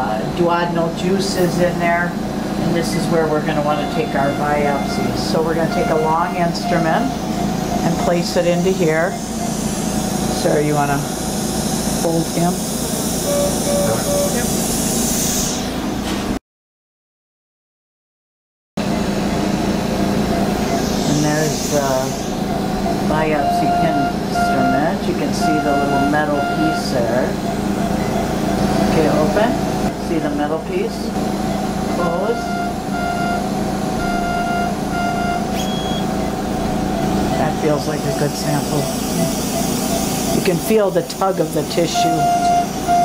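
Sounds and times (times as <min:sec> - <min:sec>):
indistinct voices: 0:00.0 - 0:09.5, 0:12.0 - 0:14.6, 0:20.2 - 0:33.1, 0:36.1 - 0:43.0
patient monitor beeping: 0:02.8 - 0:11.1, 0:13.2 - 0:14.6, 0:19.7 - 0:43.0.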